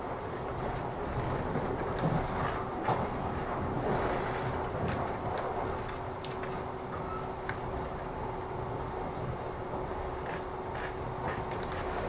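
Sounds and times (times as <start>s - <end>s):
train wheels rumbling on rail: 0.0s - 12.0s.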